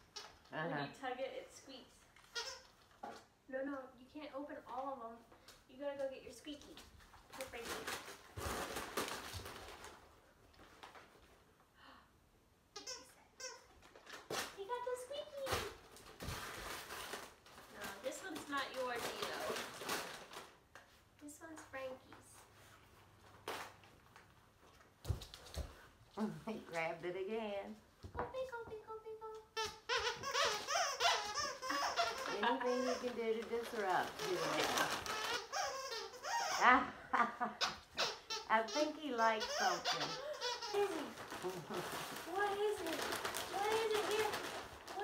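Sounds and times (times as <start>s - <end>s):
wrapping paper crinkling and tearing: 6.7s - 11.3s, 13.8s - 20.7s, 30.2s - 36.3s, 39.4s - 45.0s.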